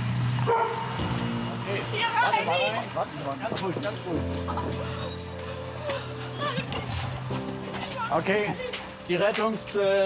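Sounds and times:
dog barking: 0:00.5 - 0:00.9.

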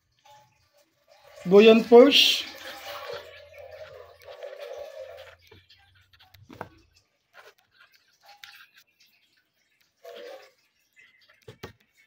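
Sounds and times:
pen scratching on paper: 0:03.1 - 0:06.7, 0:07.3 - 0:08.9.

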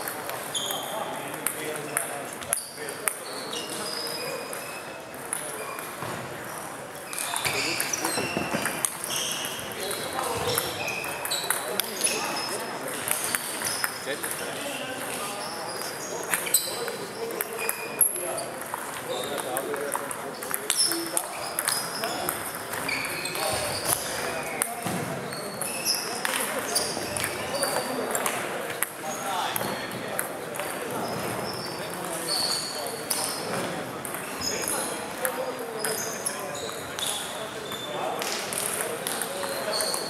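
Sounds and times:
table tennis balls pinging: 0:00.0 - 0:06.0, 0:06.9 - 0:40.0
murmur of voices: 0:00.0 - 0:40.0.

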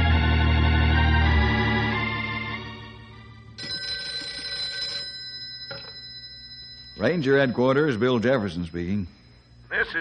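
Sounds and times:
organ music: 0:00.0 - 0:05.2
telephone bell ringing: 0:03.6 - 0:10.0.

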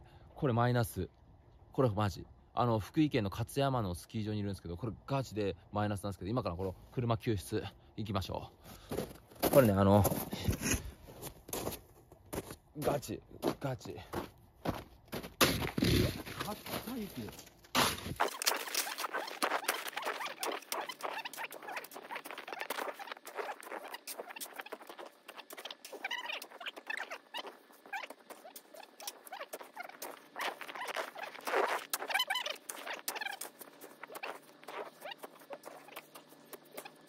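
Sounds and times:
snow shovel scraping snow sped up: 0:15.5 - 0:37.0.

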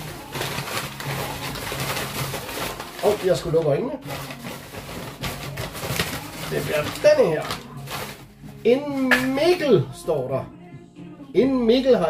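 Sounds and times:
paper slips rustling in bag: 0:00.0 - 0:09.6.

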